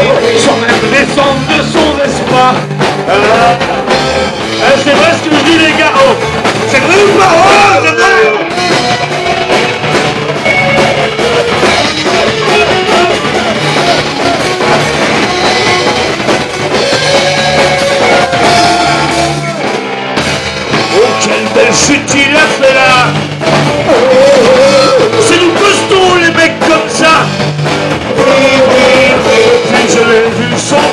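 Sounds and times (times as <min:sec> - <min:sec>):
person singing: 0:00.0 - 0:09.8, 0:10.4 - 0:19.7, 0:20.7 - 0:27.3, 0:27.9 - 0:30.9
drum kit: 0:00.0 - 0:30.9
electric guitars: 0:00.0 - 0:30.9.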